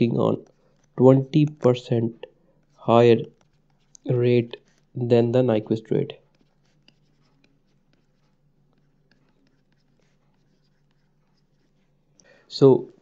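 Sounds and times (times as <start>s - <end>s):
stylus scratching on pen tablet: 0.0s - 12.2s
low steady hum: 0.0s - 13.0s.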